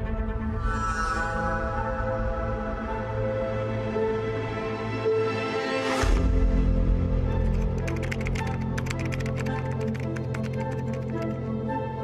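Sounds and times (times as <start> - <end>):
computer keyboard clicking: 7.4 - 11.3.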